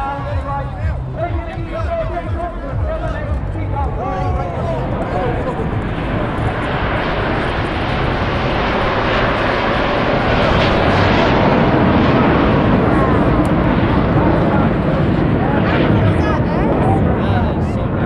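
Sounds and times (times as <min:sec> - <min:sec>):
jets flying past roaring: 0:02.1 - 0:18.0.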